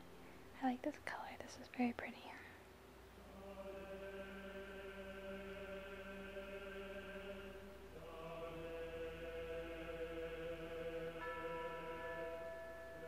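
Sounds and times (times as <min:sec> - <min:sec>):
slow sustained chords music: 0:03.2 - 0:13.0.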